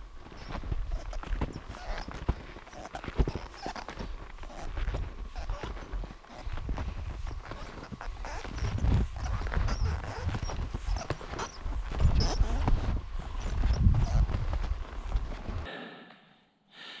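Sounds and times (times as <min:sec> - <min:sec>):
footsteps crunching through snow: 0:00.0 - 0:15.7.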